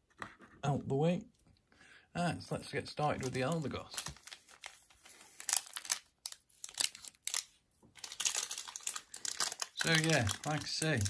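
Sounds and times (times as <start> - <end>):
foil wrappers crinkling: 3.1 - 11.0.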